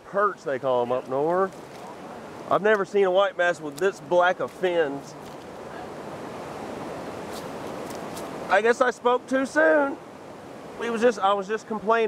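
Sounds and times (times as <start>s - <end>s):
river rapids rushing: 1.8s - 12.0s.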